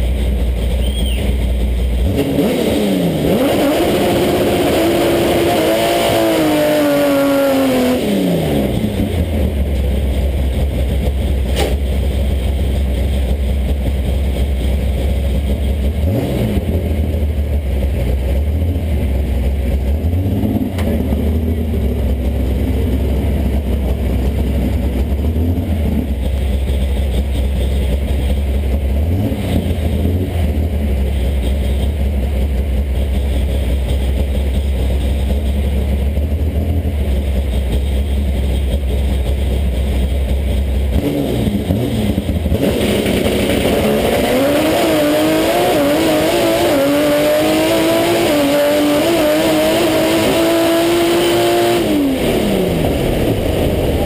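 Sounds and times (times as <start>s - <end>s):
drag car engine revving: 0.0s - 54.0s.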